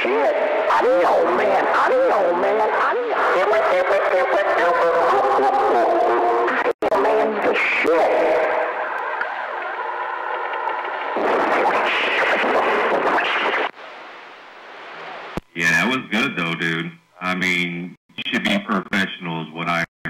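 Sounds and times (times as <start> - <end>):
man's voice over cb radio with effects: 0.0 - 8.6, 15.5 - 19.9.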